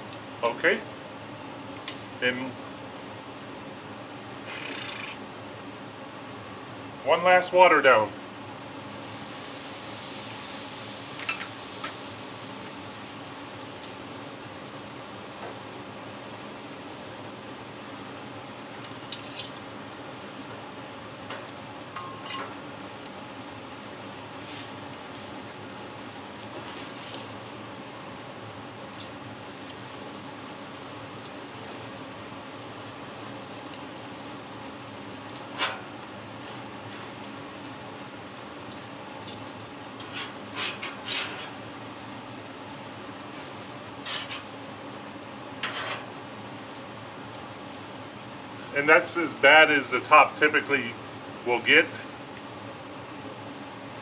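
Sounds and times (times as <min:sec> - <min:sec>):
water sizzling on hot griddle: 0:04.4 - 0:05.2, 0:08.5 - 0:54.0.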